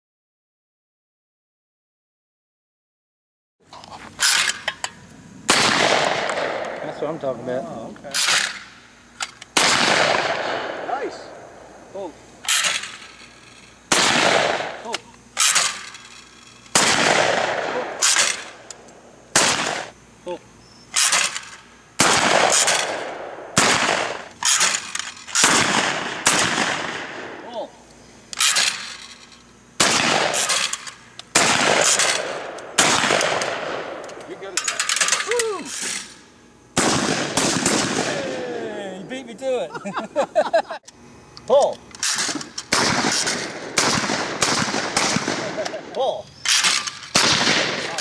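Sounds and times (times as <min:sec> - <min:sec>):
shotgun shots with echo: 0:05.5 - 0:07.2, 0:09.6 - 0:11.7, 0:13.9 - 0:14.8, 0:16.7 - 0:18.6, 0:19.3 - 0:19.9, 0:22.0 - 0:24.8, 0:25.4 - 0:27.4, 0:29.8 - 0:30.7, 0:31.3 - 0:34.1, 0:36.8 - 0:38.4, 0:42.2 - 0:45.8, 0:46.5 - 0:48.0.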